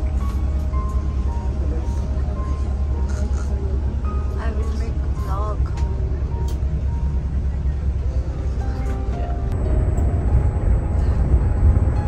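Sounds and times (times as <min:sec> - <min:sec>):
bus engine rumble inside cabin: 0:00.0 - 0:12.0
music: 0:00.0 - 0:12.0.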